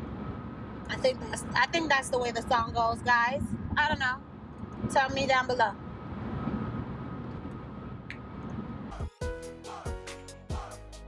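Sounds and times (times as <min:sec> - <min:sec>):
car road and engine noise: 0:00.0 - 0:08.9
music with steady beat: 0:08.9 - 0:11.0.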